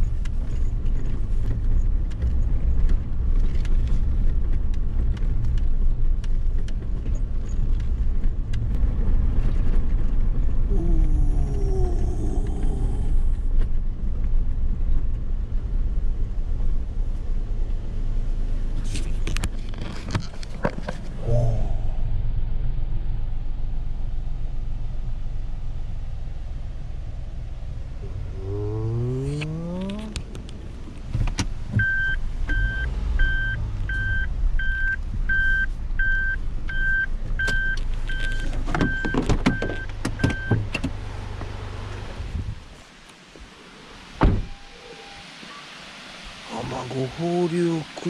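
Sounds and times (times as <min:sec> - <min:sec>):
car engine idling: 0:09.9 - 0:42.2
thump: 0:44.2 - 0:44.5.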